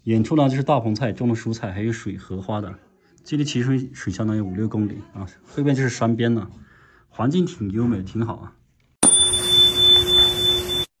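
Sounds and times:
steady high tone: 0:09.0 - 0:10.9.

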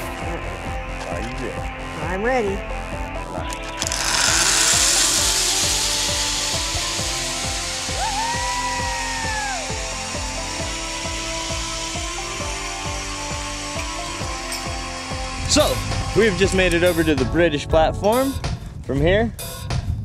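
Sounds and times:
zipline pulleys rolling on cable: 0:03.5 - 0:15.4
high held tone: 0:03.5 - 0:15.6
wind on microphone: 0:18.4 - 0:20.0.

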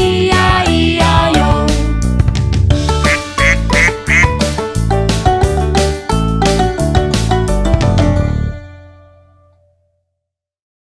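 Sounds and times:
bouncy children's song music: 0:00.0 - 0:08.2
duck quacking: 0:03.0 - 0:04.4.

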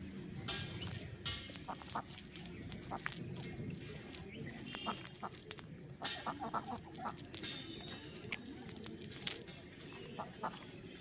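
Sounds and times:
rustling: 0:00.5 - 0:10.8
chicken clucking: 0:04.1 - 0:08.8.

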